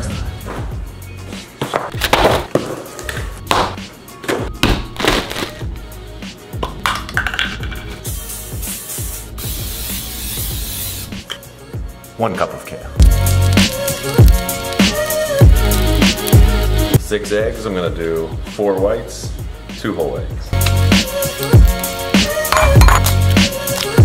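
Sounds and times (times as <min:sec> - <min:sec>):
background music with steady beat: 0:00.0 - 0:24.0
cooking spray hissing: 0:08.1 - 0:11.2
kitchen items knocking: 0:22.5 - 0:23.2.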